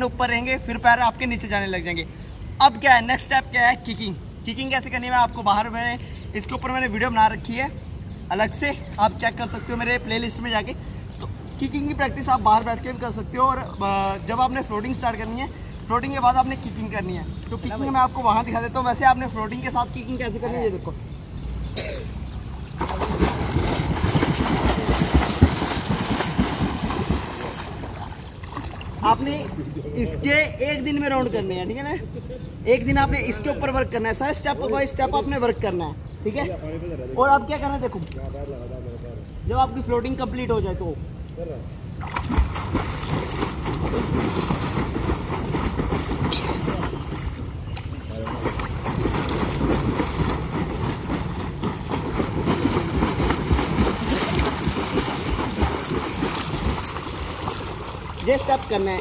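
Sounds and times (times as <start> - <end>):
legs kicking water splashing: 22.5 - 29.2, 42.0 - 59.0.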